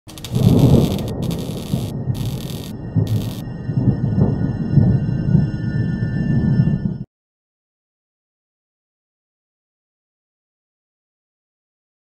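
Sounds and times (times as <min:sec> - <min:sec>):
high hiss bursts: 0:00.1 - 0:03.4
thin high held tones: 0:00.1 - 0:03.4
low rough noise: 0:00.1 - 0:03.5.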